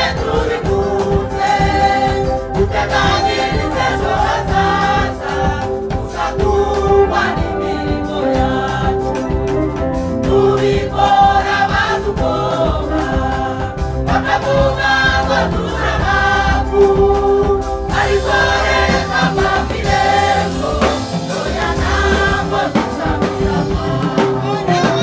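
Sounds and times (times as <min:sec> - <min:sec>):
choir singing gospel in harmony: 0:00.0 - 0:25.0
instrumental accompaniment with beat: 0:00.0 - 0:25.0.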